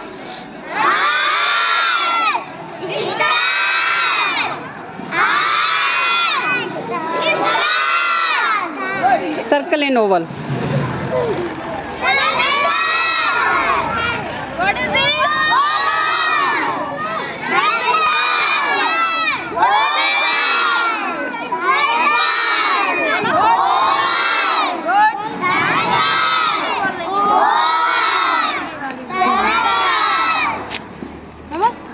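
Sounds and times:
children shouting in unison: 0:00.7 - 0:09.4, 0:11.1 - 0:30.8.

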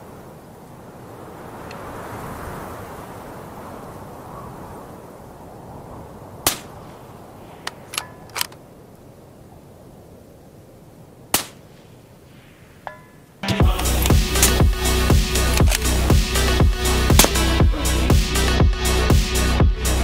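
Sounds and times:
suppressed rifle shots: 0:06.4 - 0:06.8, 0:11.3 - 0:11.9, 0:17.2 - 0:17.6
metallic rifle bolt clicks: 0:07.6 - 0:08.6, 0:15.5 - 0:15.9
steady hiss: 0:09.7 - 0:20.0.

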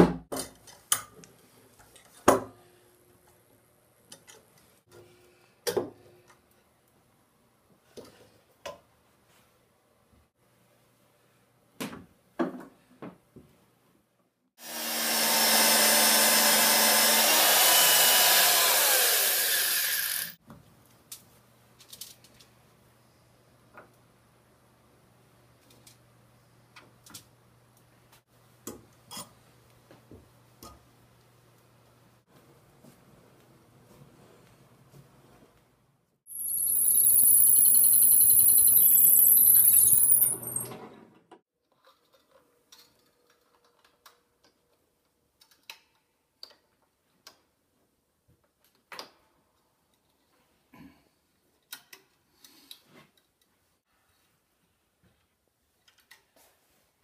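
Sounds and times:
drill press motor whine: 0:15.4 - 0:20.4, 0:36.3 - 0:40.6
faint steady tones: 0:36.3 - 0:40.6.

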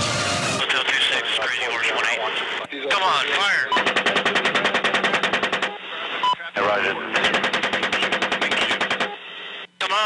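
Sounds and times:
radio voice: 0:00.6 - 0:03.8, 0:05.8 - 0:10.0
helicopter chain gun firing: 0:03.8 - 0:05.7, 0:07.2 - 0:09.1.

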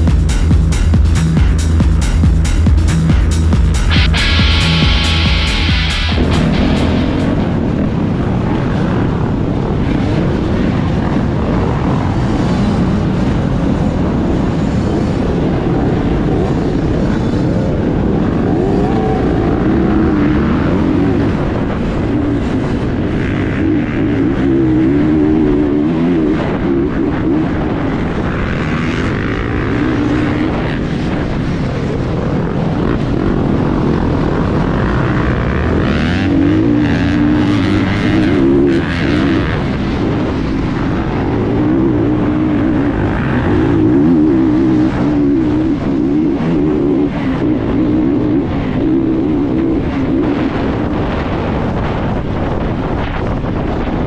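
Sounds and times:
dirt bike engine revving: 0:00.0 - 0:53.0
other dirt bikes running: 0:00.0 - 0:54.0.

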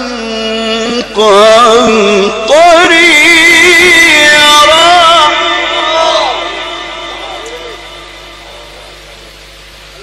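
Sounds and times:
sound system hiss and hum: 0:00.0 - 0:10.0
audience voices: 0:05.8 - 0:10.0.

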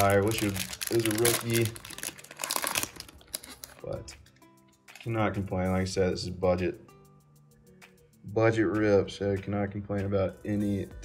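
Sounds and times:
cellophane wrapper crinkling and tearing: 0:00.0 - 0:04.1.

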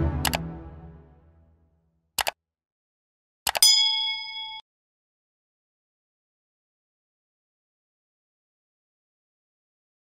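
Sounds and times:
synthesized piano tune: 0:00.0 - 0:01.5
interface clicks: 0:00.1 - 0:00.5, 0:03.5 - 0:03.7
electronic bell-like ding: 0:03.6 - 0:04.6.

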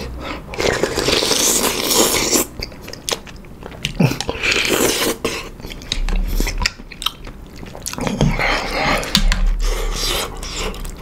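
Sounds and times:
person chewing noodles: 0:00.0 - 0:11.0.

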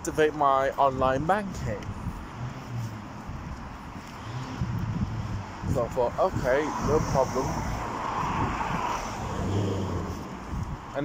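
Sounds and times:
vehicle passing: 0:01.3 - 0:11.0.

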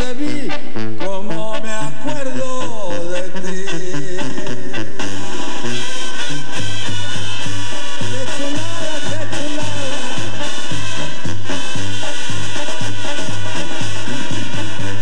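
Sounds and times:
live band playing ranchera: 0:00.0 - 0:15.0
steady bass beat: 0:00.0 - 0:15.0.

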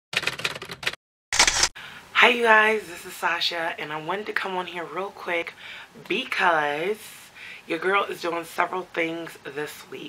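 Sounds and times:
quick run of clicks: 0:00.2 - 0:01.7
short burst of noise: 0:01.4 - 0:01.7.

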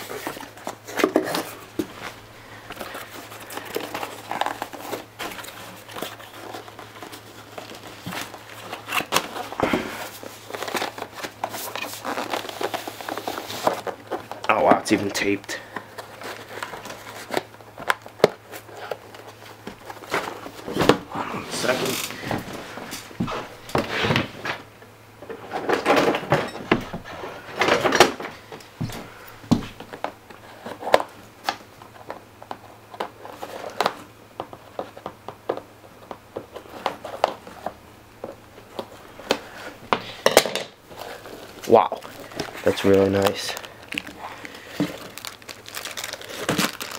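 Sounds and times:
cardboard packaging rustling: 0:00.0 - 0:24.7, 0:40.8 - 0:46.9.

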